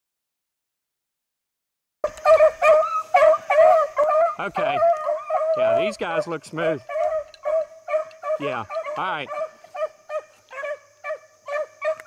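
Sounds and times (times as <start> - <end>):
beagles baying: 2.1 - 12.0.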